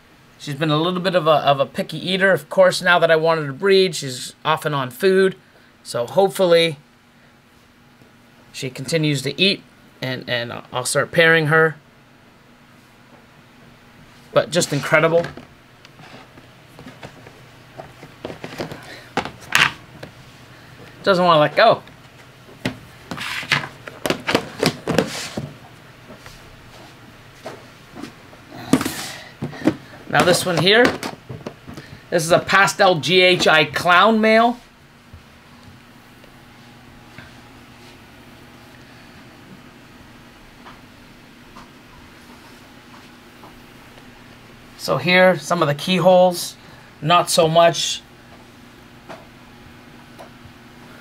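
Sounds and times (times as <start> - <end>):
low electrical hum: 0.0 - 51.0
plastic lid scrape: 23.1 - 25.5.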